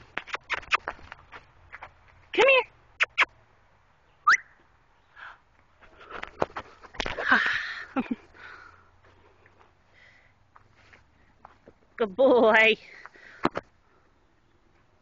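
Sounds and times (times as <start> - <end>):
person making clicking and kissing sounds: 0.1 - 1.2, 3.0 - 3.3
rising whistle: 4.2 - 4.6.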